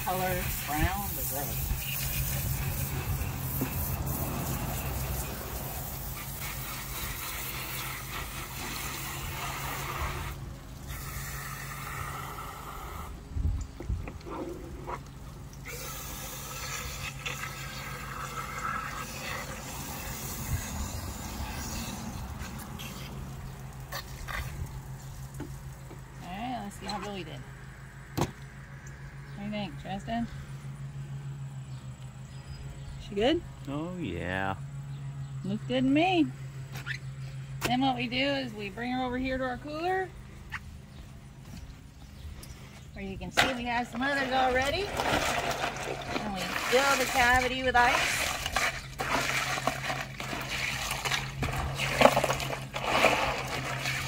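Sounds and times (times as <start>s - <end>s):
water spraying from hose nozzle: 0.0s - 13.2s, 14.5s - 25.9s, 43.6s - 54.0s.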